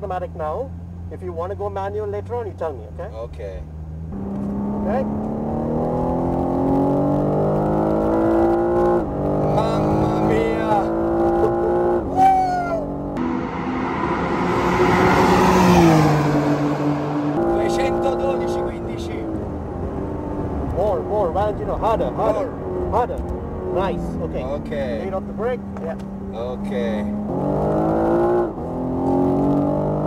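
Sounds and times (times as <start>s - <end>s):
car engine accelerating hard: 3.9s - 30.0s
car passing at speed: 13.0s - 24.4s.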